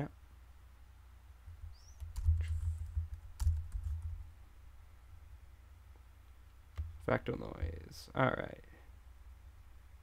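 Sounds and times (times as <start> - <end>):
computer keyboard keystrokes: 1.6 - 4.2.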